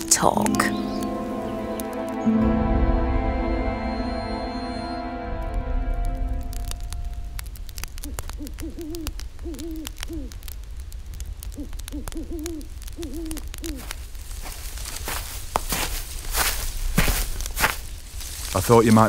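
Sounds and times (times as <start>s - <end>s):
steady low rumble: 0.8s - 11.9s
crackling clicks: 5.0s - 19.0s
owl hooting: 8.0s - 10.4s, 11.5s - 14.0s.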